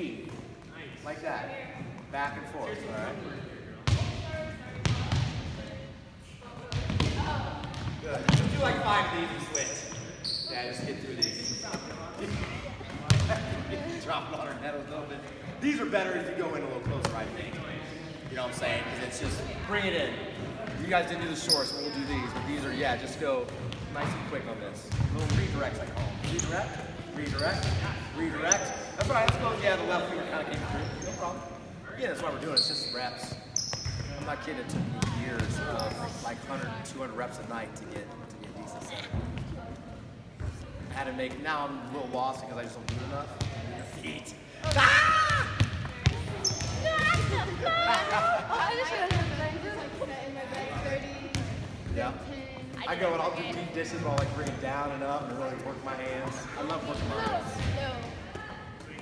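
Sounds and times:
athletic shoes squeaking: 0:09.3 - 0:13.4, 0:21.4 - 0:22.5, 0:26.2 - 0:29.1, 0:30.6 - 0:31.6, 0:32.4 - 0:34.3, 0:35.5 - 0:36.4, 0:46.0 - 0:47.9.

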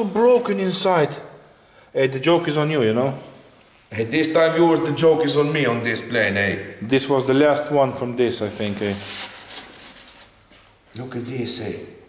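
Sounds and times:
foam rubbing and scraping: 0:08.3 - 0:10.5.

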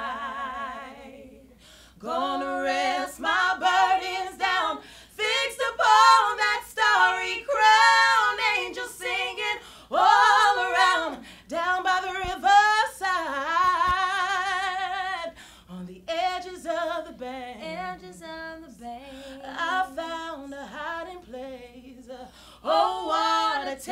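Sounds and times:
women singing a cappella: 0:00.0 - 0:23.9
singer breathing: 0:01.5 - 0:02.0, 0:04.8 - 0:05.2, 0:09.6 - 0:09.9, 0:11.2 - 0:11.5, 0:15.4 - 0:15.7, 0:19.1 - 0:19.4, 0:22.3 - 0:22.6.

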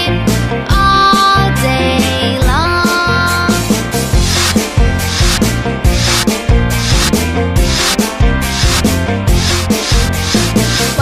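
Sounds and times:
children's song music: 0:00.0 - 0:11.0
scratchy shaker percussion: 0:04.0 - 0:11.0.

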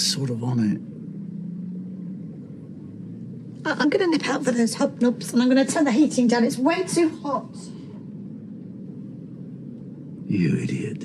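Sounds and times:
faint rumble: 0:00.0 - 0:11.0
low steady hum: 0:00.0 - 0:11.0.

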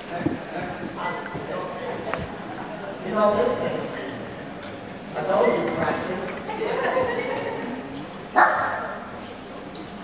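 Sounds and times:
small dog barking: 0:08.4 - 0:09.0.

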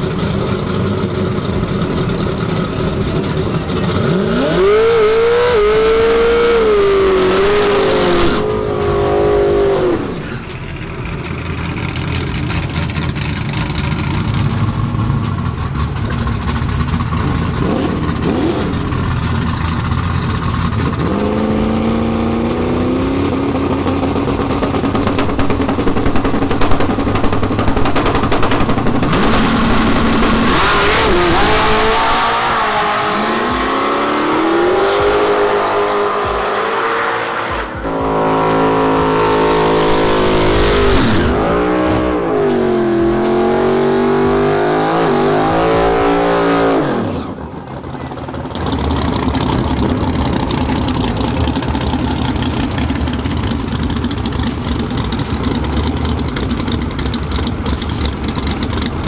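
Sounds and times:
drag race car engine revving: 0:00.0 - 0:59.0.

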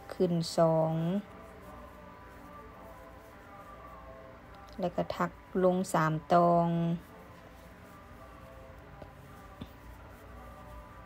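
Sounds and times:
woman speaking: 0:00.0 - 0:01.3, 0:04.7 - 0:07.1
faint soft background music: 0:00.0 - 0:11.0.

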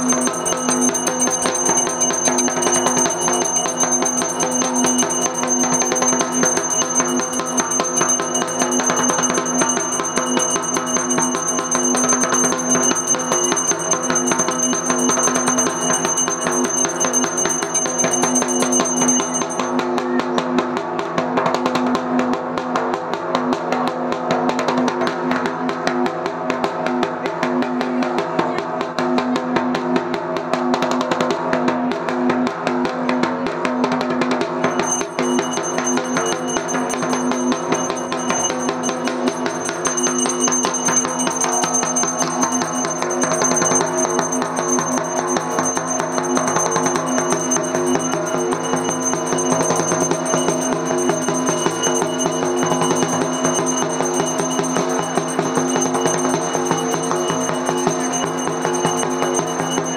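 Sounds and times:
high ringing tone: 0:00.0 - 0:20.7, 0:34.2 - 0:59.9
fast continuous drumming: 0:00.0 - 0:59.9.

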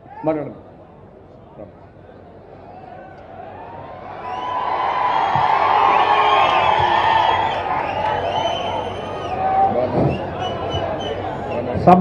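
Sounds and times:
crowd cheering and shouting: 0:02.7 - 0:11.3.

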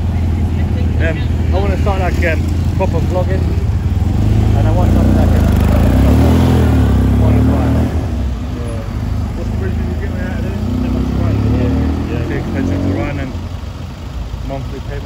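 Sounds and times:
car engine passing: 0:00.0 - 0:15.0
car engine pulling away: 0:00.0 - 0:15.0
passers-by talking: 0:00.0 - 0:15.0
street traffic noise: 0:00.0 - 0:15.0.

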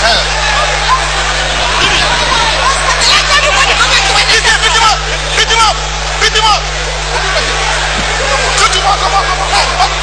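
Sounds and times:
crowd shouting: 0:00.0 - 0:10.0
steady low hum: 0:00.0 - 0:10.0.

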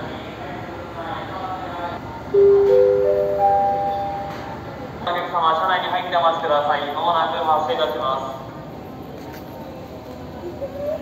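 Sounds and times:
electronic announcement chime: 0:02.4 - 0:04.6.

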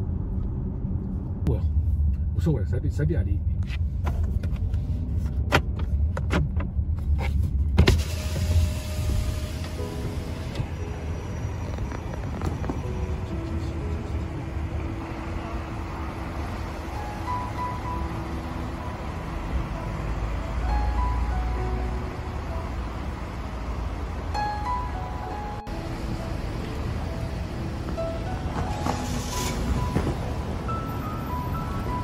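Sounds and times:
car driving slowly: 0:00.0 - 0:32.0
soft music: 0:09.6 - 0:32.0.

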